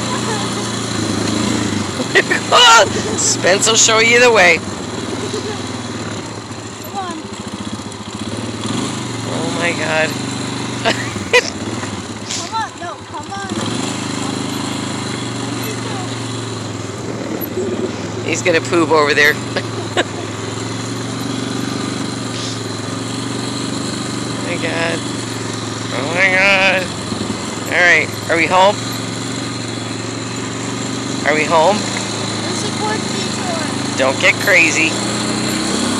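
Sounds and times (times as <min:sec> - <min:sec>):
small engine running: 0:00.0 - 0:35.9
woman laughing: 0:01.9 - 0:03.2, 0:05.0 - 0:05.8, 0:10.8 - 0:12.6, 0:19.4 - 0:20.6.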